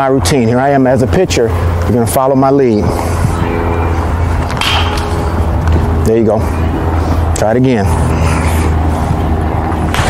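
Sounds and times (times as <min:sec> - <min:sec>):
low rumble and hum: 0:00.0 - 0:10.0.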